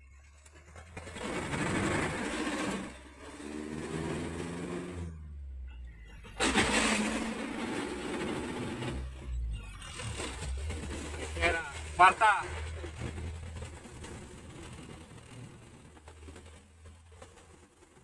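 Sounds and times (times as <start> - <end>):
truck engine revving: 0.0 - 18.0.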